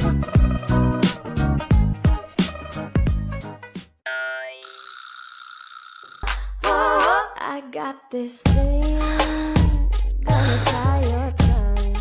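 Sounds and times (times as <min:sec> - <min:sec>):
high steady ringing tone: 0:04.1 - 0:06.2.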